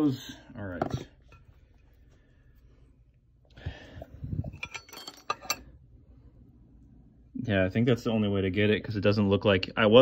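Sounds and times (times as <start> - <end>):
metallic clinks: 4.4 - 5.8.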